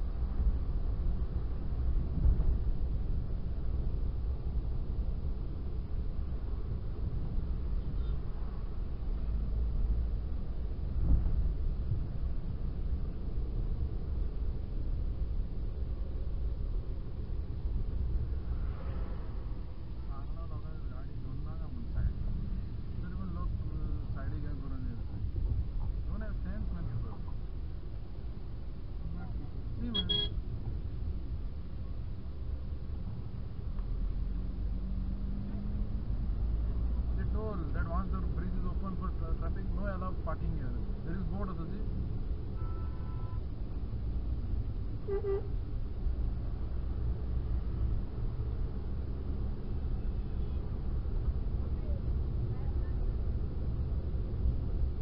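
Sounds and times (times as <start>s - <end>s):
car tyre and engine rumble: 0.0s - 55.0s
vehicle horn beep: 29.9s - 30.4s, 42.6s - 43.4s, 45.0s - 45.5s.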